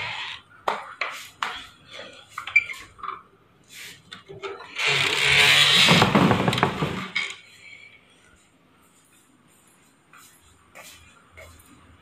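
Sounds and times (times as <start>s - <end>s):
mesh door scraping and rattling: 4.7s - 7.4s.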